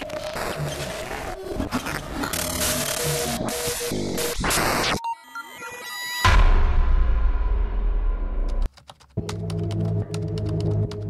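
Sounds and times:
glitchy noise stutters: 0:00.0 - 0:05.0.

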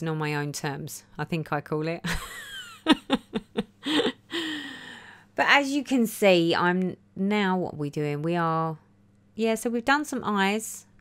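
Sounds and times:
woman chuckling: 0:02.0 - 0:04.7.

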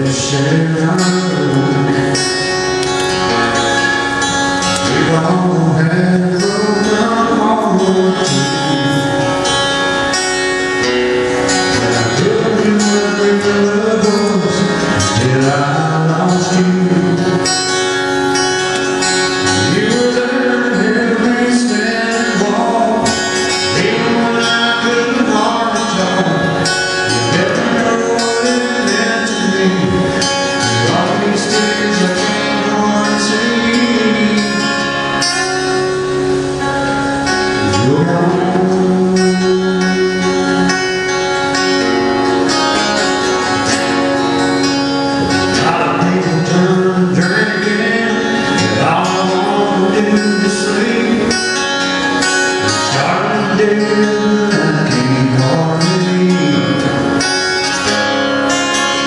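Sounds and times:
acoustic guitar: 0:00.0 - 0:59.0
man singing: 0:00.0 - 0:59.0.

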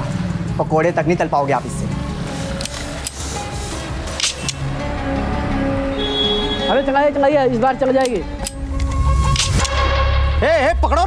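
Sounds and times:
film score sustained notes: 0:00.0 - 0:11.0
street traffic rumble: 0:00.0 - 0:11.0.

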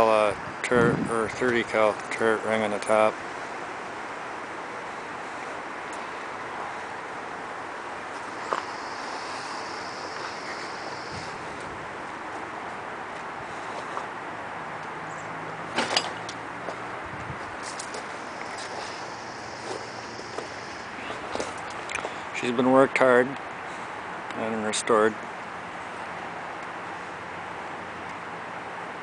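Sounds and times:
outdoor background noise: 0:00.0 - 0:29.0
faint high whines: 0:08.2 - 0:11.7, 0:18.0 - 0:21.7.

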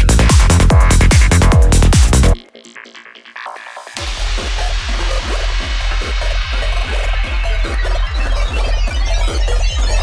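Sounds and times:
psytrance music: 0:00.0 - 0:10.0.

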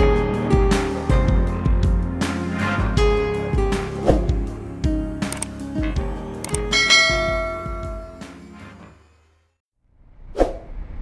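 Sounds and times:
background music with a beat: 0:00.0 - 0:08.6
bright bell chime: 0:06.5 - 0:08.6.

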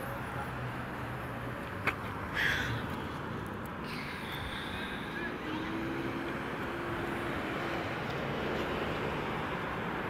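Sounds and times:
traffic noise: 0:00.0 - 0:10.0.

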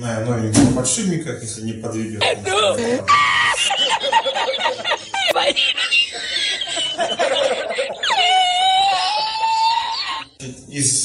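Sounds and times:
man laughing hysterically: 0:02.2 - 0:10.4.

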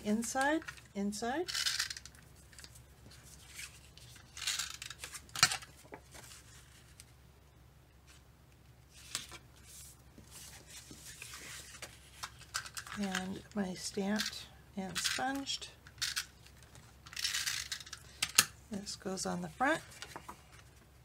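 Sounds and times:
cardstock rustling and swishing: 0:08.9 - 0:12.2.

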